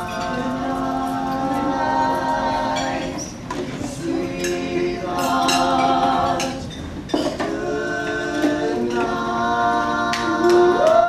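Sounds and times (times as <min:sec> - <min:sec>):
boys singing in close harmony: 0:00.0 - 0:11.0.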